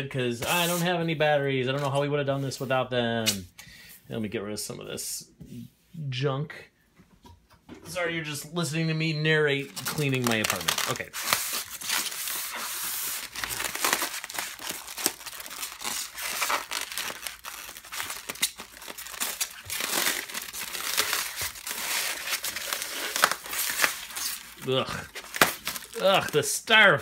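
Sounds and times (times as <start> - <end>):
styrofoam crunching: 9.6 - 27.0
packing tape tearing: 9.7 - 26.4.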